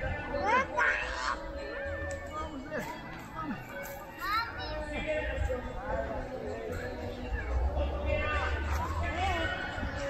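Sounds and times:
children playing: 0.0 - 10.0.

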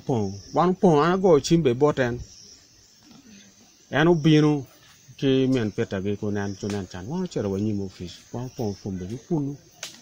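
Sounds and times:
man speaking: 0.0 - 2.2, 3.9 - 9.7
crickets chirring: 0.0 - 10.0.

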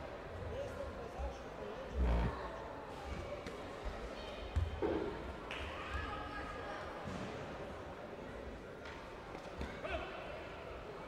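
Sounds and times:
indistinct voices in hall: 0.5 - 7.2.

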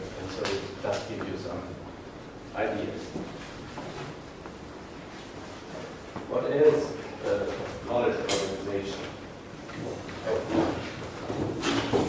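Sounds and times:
man speaking: 6.3 - 9.2.

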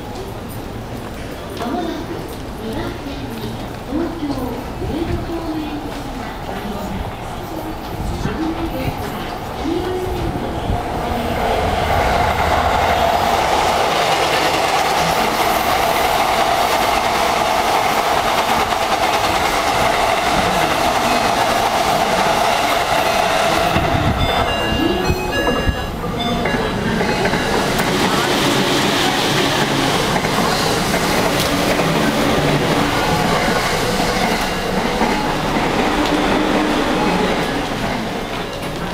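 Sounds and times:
busy station platform din: 0.0 - 38.9
train hum: 0.0 - 38.9
train wheels rumbling on rail: 0.0 - 38.9.

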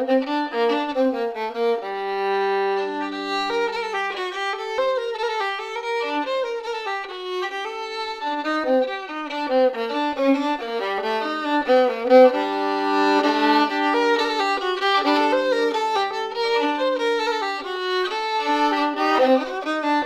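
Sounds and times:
solo violin playing a waltz: 0.0 - 20.0.

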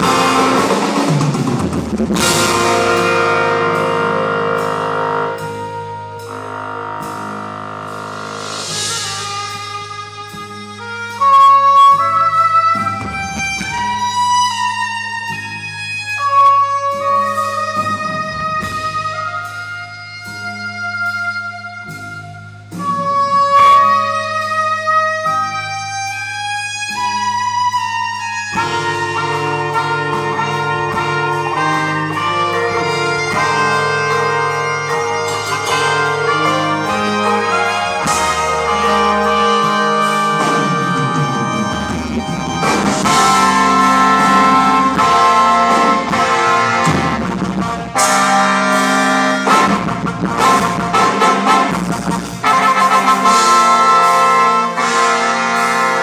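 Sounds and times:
low bass note: 0.0 - 10.8
horn melody: 0.0 - 56.0
live band playing: 0.0 - 56.0.

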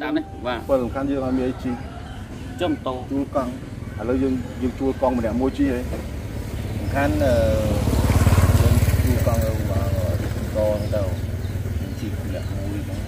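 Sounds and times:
motorcycle engine running: 2.2 - 13.0.

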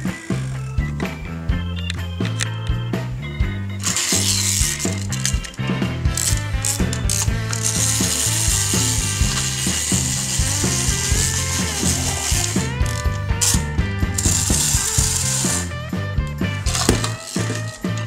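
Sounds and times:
toy pull-back motor whirring: 0.0 - 1.0, 3.8 - 15.8, 16.7 - 18.0
background music: 0.0 - 18.0.

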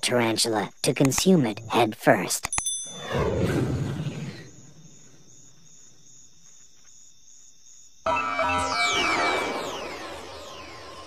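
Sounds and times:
cricket chirping: 0.0 - 11.0
night-time ambience: 0.0 - 11.0.

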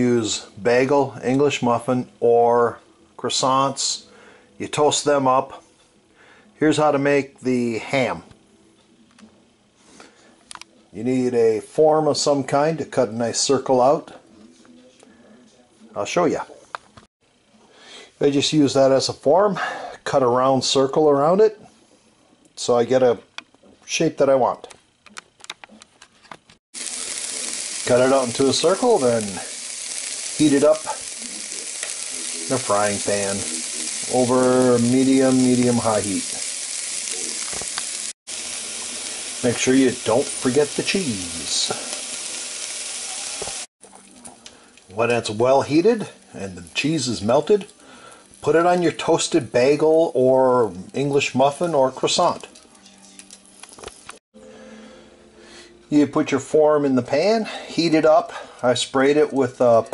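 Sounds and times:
ham sizzling in a pan: 0.0 - 5.6, 26.8 - 54.2.

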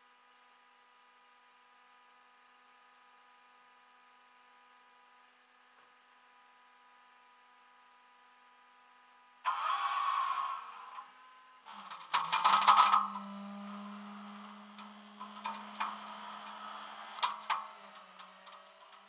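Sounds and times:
sharp clicks and knocks: 14.4 - 19.0.

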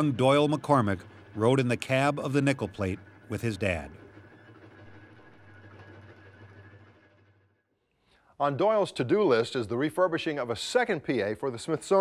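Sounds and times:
low mechanical hum: 0.0 - 12.0
thin high whine: 0.0 - 12.0.

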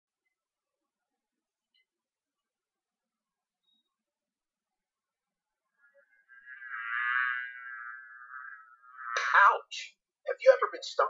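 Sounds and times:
bee buzzing: 5.6 - 9.6.

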